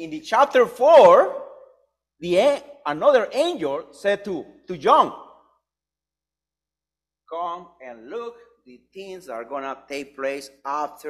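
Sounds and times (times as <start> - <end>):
man speaking: 0.0 - 1.6, 2.2 - 5.3, 7.3 - 11.0.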